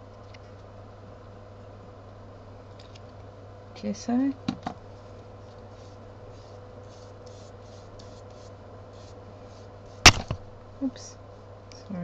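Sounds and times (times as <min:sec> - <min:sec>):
low steady hum: 0:00.0 - 0:12.0
scratchy strokes: 0:05.0 - 0:10.1
sharp knock: 0:10.1 - 0:10.5.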